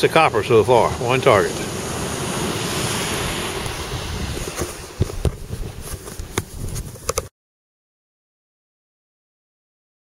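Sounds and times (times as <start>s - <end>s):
wind rushing over microphone: 0.2s - 7.2s
handling knocks and clicks: 4.6s - 7.3s.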